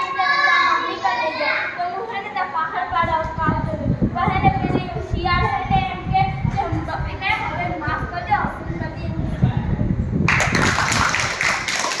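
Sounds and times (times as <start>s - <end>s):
children clapping: 10.3s - 12.0s.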